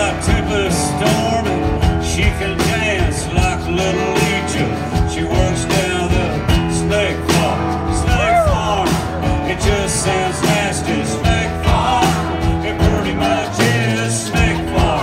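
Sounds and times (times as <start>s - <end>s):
live blues-rock band playing: 0.0s - 15.0s.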